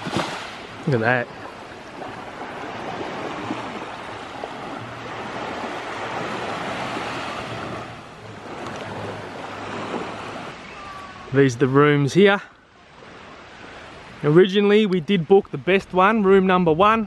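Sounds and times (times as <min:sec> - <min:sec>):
small waves on sandy beach: 0:00.0 - 0:17.0.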